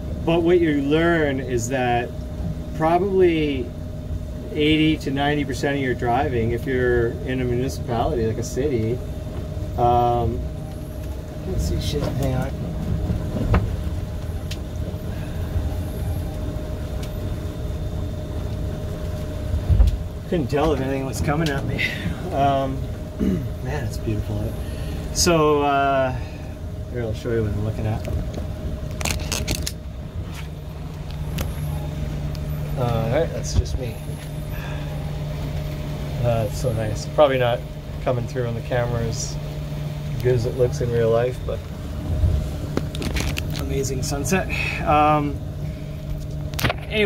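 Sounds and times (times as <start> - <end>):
faint steady hum: 0.0 - 47.0.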